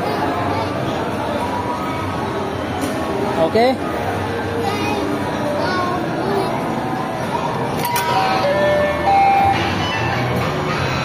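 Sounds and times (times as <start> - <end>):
coin slot click: 7.8 - 8.5
electronic ride tune: 7.8 - 11.0.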